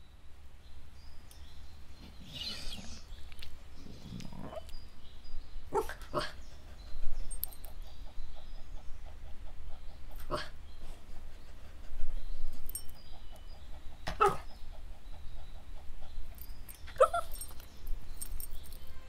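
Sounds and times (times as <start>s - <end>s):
dog vocalizing: 9.1s - 10.6s, 14.2s - 14.6s.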